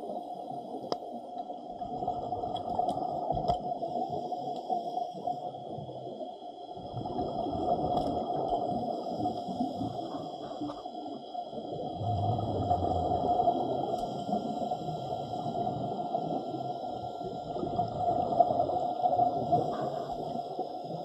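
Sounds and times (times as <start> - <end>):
muffled underwater water noise: 0.0 - 21.0
low rumble: 11.9 - 14.0.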